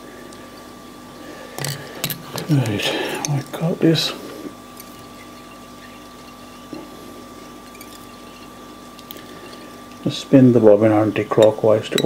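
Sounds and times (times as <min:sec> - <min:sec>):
faint hum with held tones: 0:00.0 - 0:12.0.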